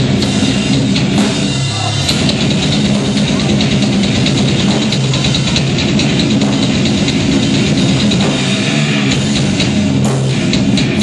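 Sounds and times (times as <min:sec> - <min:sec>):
electric guitars: 0:00.0 - 0:11.0
fast drums and cymbals: 0:00.0 - 0:11.0.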